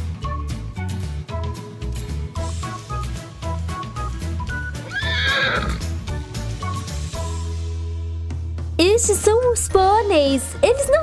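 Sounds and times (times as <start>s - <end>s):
background music: 0.0s - 11.0s
horse whinnying: 4.8s - 6.0s.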